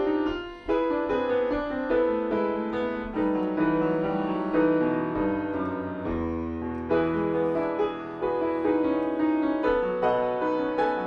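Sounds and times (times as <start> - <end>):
grand piano chords: 0.0 - 11.0.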